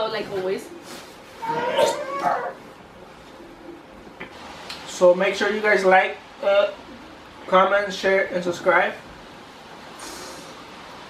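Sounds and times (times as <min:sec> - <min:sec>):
man whimpering: 0:01.4 - 0:02.6.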